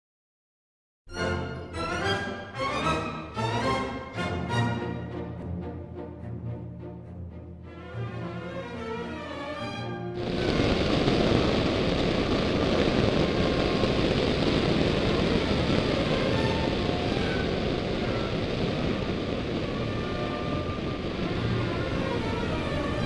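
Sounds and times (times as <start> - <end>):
faint orchestral music: 1.1 - 10.4, 19.7 - 23.0.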